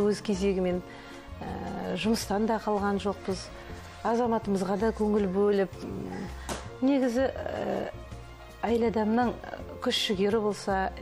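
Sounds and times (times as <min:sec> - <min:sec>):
woman speaking: 0:00.0 - 0:08.0, 0:08.6 - 0:11.0
background music: 0:00.0 - 0:11.0.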